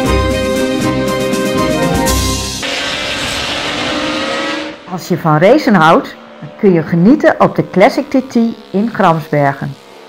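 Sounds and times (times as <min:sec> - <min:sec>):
racing motorcycles passing: 0:02.6 - 0:10.0.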